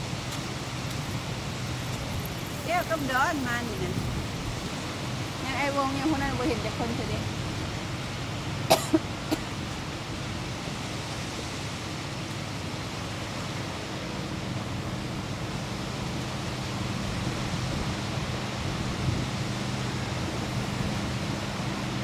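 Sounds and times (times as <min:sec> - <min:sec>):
lake water at shore: 0:00.0 - 0:22.0
motorboat engine hum: 0:00.0 - 0:22.0.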